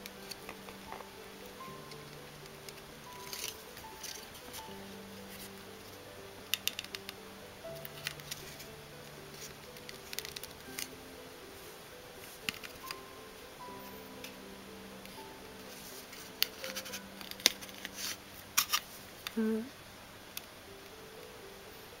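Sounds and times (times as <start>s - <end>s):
soft background music: 0.0s - 22.0s
plastic parts clicking: 6.5s - 7.2s, 7.8s - 8.6s, 9.3s - 10.9s, 12.5s - 13.0s, 16.3s - 19.4s.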